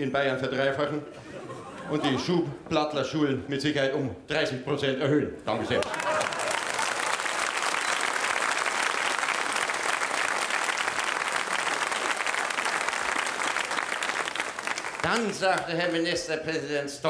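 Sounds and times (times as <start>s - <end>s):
audience applauding: 5.7s - 15.8s.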